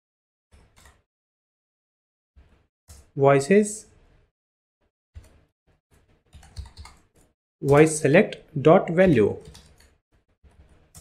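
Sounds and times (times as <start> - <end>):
computer keyboard keystrokes: 6.4 - 7.0, 9.4 - 10.0.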